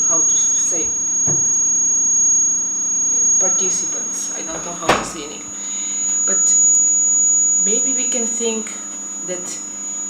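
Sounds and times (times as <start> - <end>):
high-pitched electrical whine: 0.0 - 10.0
low mains hum: 0.0 - 10.0.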